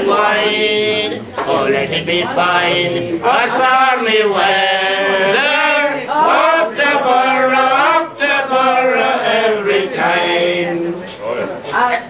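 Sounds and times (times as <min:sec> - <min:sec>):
man singing unaccompanied: 0:00.0 - 0:11.1.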